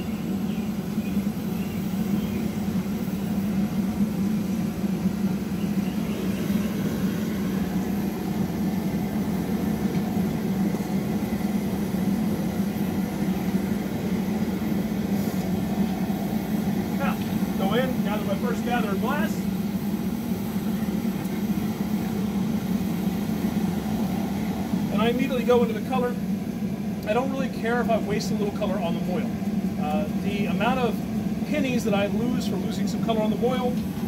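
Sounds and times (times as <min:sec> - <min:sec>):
gas burner rushing: 0:00.0 - 0:34.0
low hum: 0:00.0 - 0:34.0.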